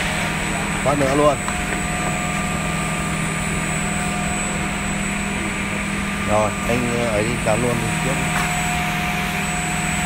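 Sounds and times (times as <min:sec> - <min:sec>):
machine humming: 0:00.0 - 0:10.0
constant high tones: 0:00.3 - 0:10.0.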